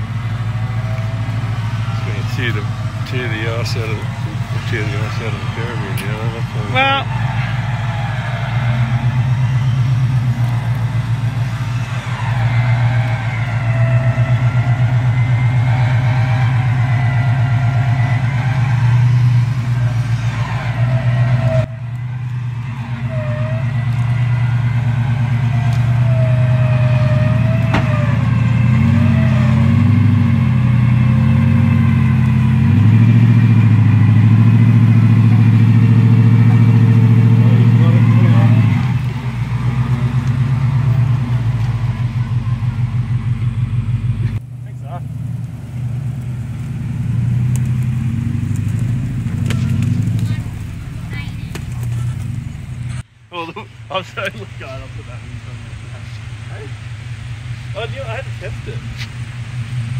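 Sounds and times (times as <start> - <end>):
engine running under load: 0.0 - 59.9.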